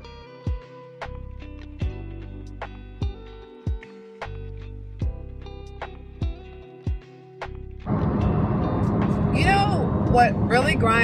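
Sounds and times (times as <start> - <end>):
car road and engine noise: 7.8 - 11.0
woman talking: 9.3 - 11.0.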